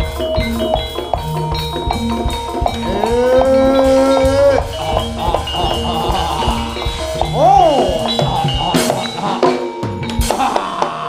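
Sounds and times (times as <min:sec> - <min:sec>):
band percussion: 0:00.0 - 0:11.0.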